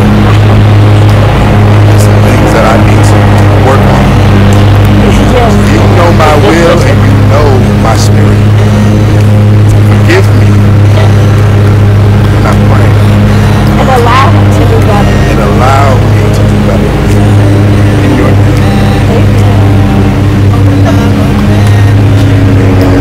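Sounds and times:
loud low hum: 0.0s - 23.0s
people's voices: 0.0s - 23.0s.

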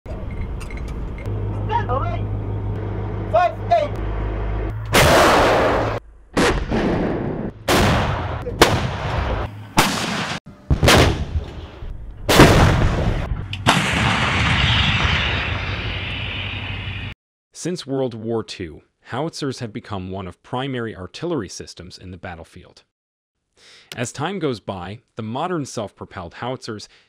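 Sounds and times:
steady low hum: 0.1s - 6.3s
howitzer blasts with rumbling decay: 4.9s - 16.8s.

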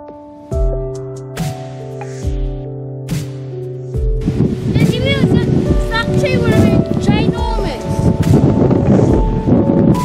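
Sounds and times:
soft music of held notes: 0.0s - 10.0s
wind buffeting microphone: 4.0s - 10.0s.

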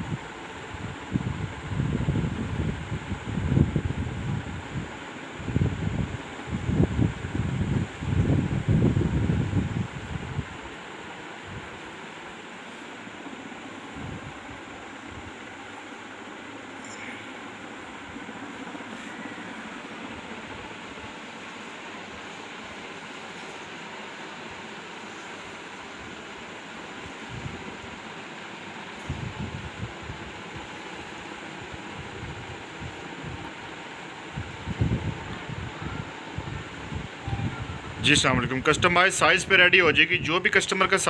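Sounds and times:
steady hiss and rumble: 0.0s - 41.0s.

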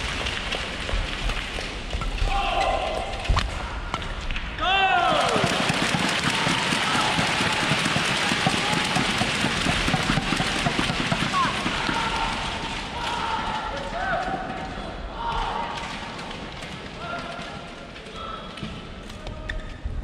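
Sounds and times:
crowd cheering and clapping: 0.0s - 13.7s
crowd shouting: 2.2s - 16.2s.

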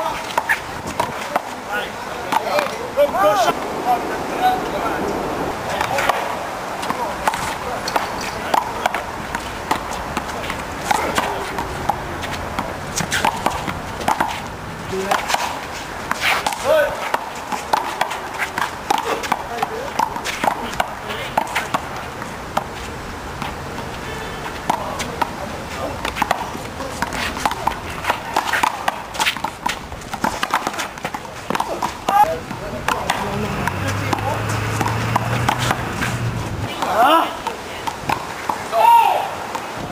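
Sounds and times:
voices of people: 0.0s - 39.9s.

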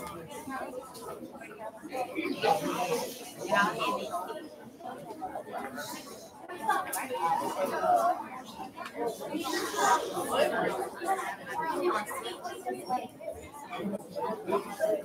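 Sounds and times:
chatter of many voices: 0.0s - 15.0s.

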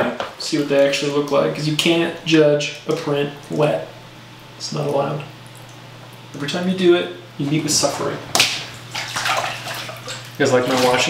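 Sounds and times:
paper prints splashing in water: 8.3s - 11.0s.

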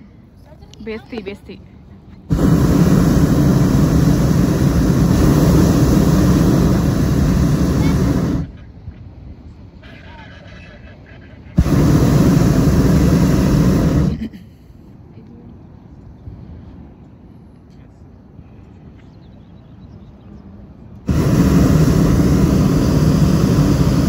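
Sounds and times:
propane burner blasts: 2.2s - 8.7s, 11.5s - 14.4s, 21.0s - 24.0s.

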